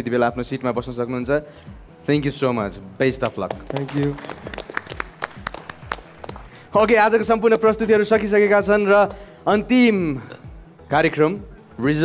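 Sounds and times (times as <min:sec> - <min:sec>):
scattered hand claps: 0:03.2 - 0:06.7.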